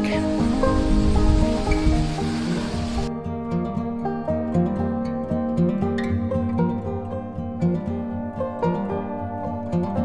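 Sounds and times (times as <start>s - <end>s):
outdoor background hiss: 0.0s - 3.7s
instrumental background music: 0.0s - 10.0s.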